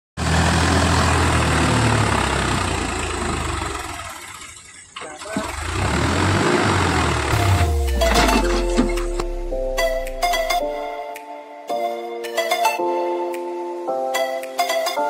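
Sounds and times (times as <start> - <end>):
tractor engine under load: 0.2 - 7.6
music: 7.3 - 15.0.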